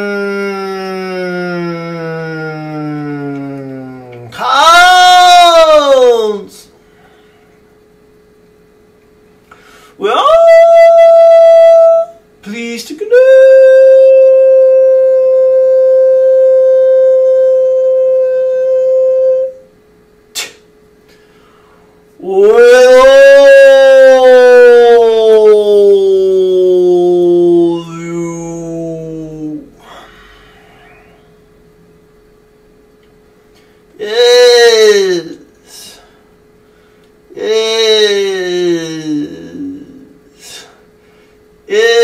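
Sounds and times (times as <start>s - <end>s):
man singing held note: 22.2s - 31.3s, 34.0s - 36.0s, 37.3s - 40.7s.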